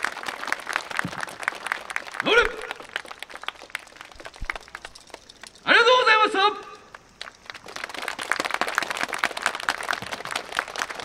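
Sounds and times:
audience applauding: 0.0 - 5.3, 6.9 - 11.0.

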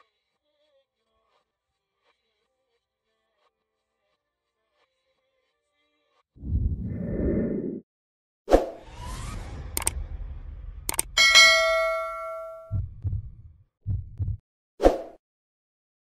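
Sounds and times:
low rumble: 6.4 - 7.8, 8.8 - 11.7, 12.5 - 14.4
sharp hit: 8.8 - 12.8
bell ding: 11.2 - 12.8
low thumps: 12.5 - 14.4.

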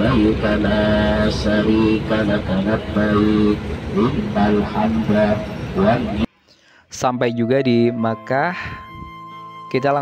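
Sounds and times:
man chanting over loudspeakers: 0.0 - 6.3
bus engine rumble: 0.0 - 10.0.

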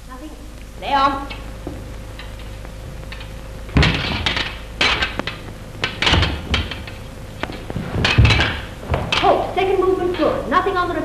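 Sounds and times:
fencing foils clattering: 3.1 - 10.3
feet thumping on floor: 3.7 - 9.5.

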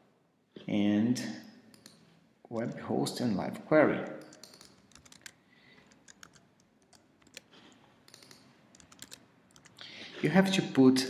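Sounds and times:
computer keyboard keys clicking: 1.7 - 2.0, 4.0 - 9.9.

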